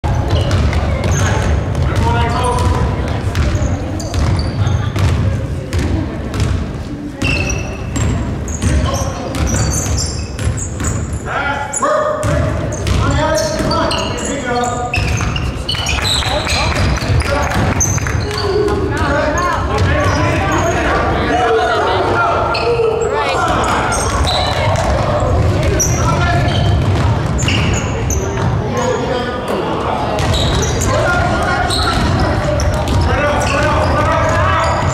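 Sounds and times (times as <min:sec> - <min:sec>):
sneaker squeaks: 0:00.0 - 0:21.2, 0:22.4 - 0:29.3, 0:30.1 - 0:34.9
spectators' voices: 0:00.0 - 0:34.9
basketball bouncing: 0:00.1 - 0:11.1, 0:12.2 - 0:13.9, 0:14.9 - 0:20.7, 0:23.4 - 0:28.6, 0:30.2 - 0:34.9
basketball bouncing on wooden floor: 0:12.2 - 0:13.8, 0:23.5 - 0:27.8, 0:30.2 - 0:34.9.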